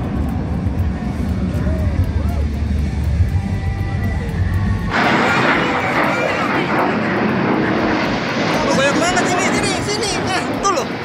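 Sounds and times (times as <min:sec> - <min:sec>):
fighter jets roaring overhead: 0:00.0 - 0:11.0.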